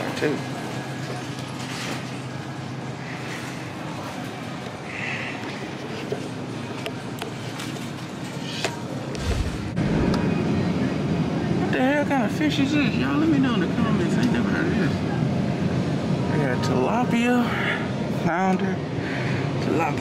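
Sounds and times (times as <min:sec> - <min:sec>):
steady hum and hiss: 0:00.0 - 0:20.0
low rumble: 0:09.1 - 0:11.4.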